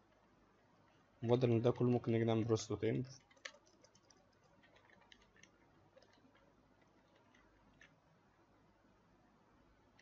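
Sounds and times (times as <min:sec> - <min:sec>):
computer keyboard or mouse clicks: 0:03.2 - 0:08.0.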